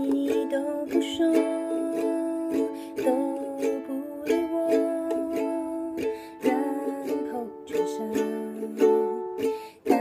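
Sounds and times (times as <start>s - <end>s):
ukulele strumming chords: 0.0s - 10.0s.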